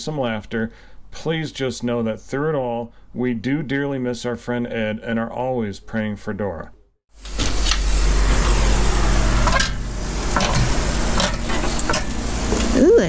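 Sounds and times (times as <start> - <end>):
meat sizzling on griddle: 7.1 - 13.0.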